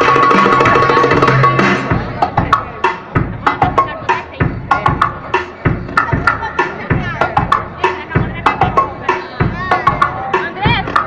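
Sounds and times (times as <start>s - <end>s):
belly-dance music: 0.0s - 11.0s.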